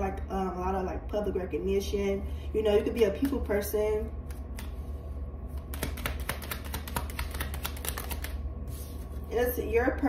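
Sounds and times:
cards being shuffled: 5.6 - 9.2.

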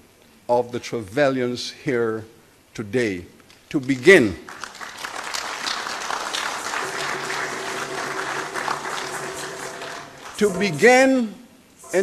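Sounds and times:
audience applauding: 3.9 - 11.0.

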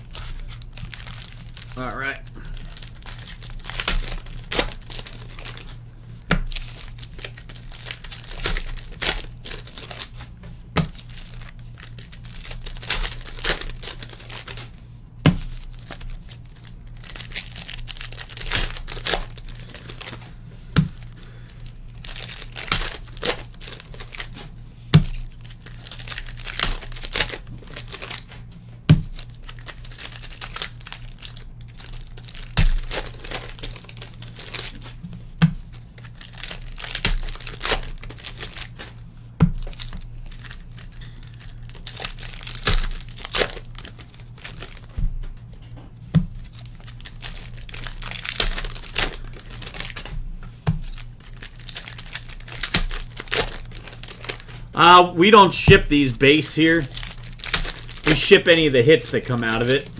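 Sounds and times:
foil packs tearing and crinkling: 0.0 - 5.8, 6.4 - 14.8, 15.4 - 35.0, 35.7 - 45.0, 46.4 - 50.2, 50.8 - 59.9
cards being handled: 46.0 - 59.9.

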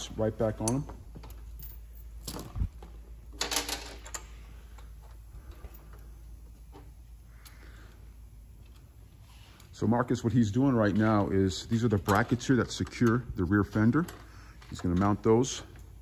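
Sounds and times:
steady low hum: 0.0 - 16.0
parts being handled clicking: 0.5 - 9.7, 10.8 - 16.0.

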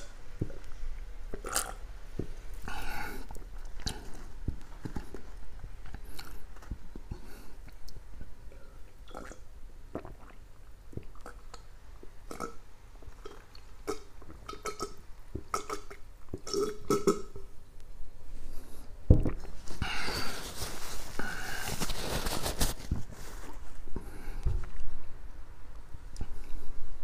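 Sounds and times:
man gulping a drink: 8.5 - 11.7, 12.3 - 17.5.

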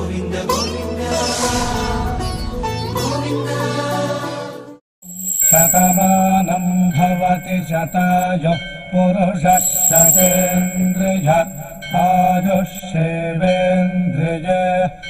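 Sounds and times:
high bell-like shimmer: 5.0 - 8.3, 9.5 - 12.9
mantra chanting: 12.5 - 15.0.

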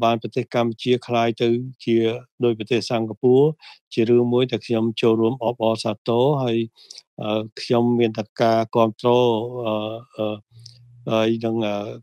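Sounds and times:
man narrating: 0.0 - 12.0.

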